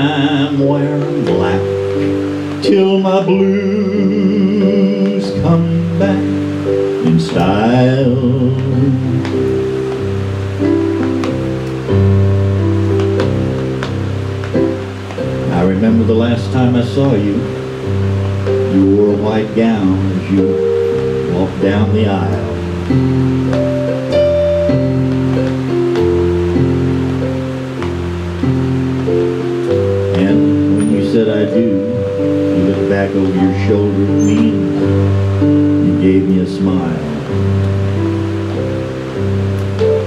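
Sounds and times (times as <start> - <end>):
electronic keyboard chords: 0.0 - 40.0
fan hiss: 0.0 - 40.0.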